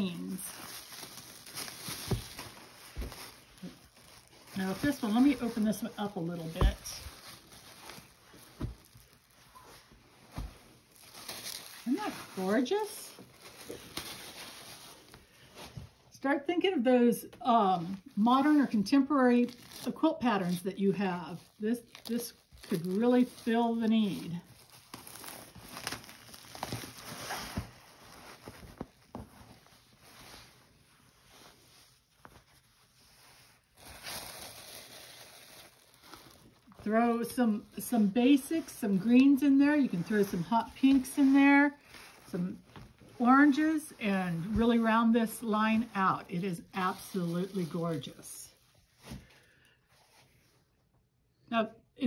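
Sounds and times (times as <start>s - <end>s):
fabric rustling: 0.0s - 16.1s, 17.7s - 50.8s.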